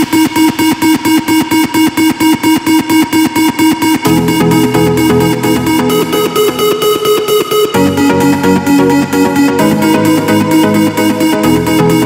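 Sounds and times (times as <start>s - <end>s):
electronic trance music: 0.0s - 12.0s.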